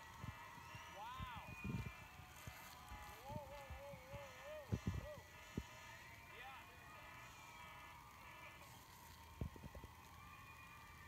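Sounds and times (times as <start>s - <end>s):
audience cheering: 0.0s - 11.0s.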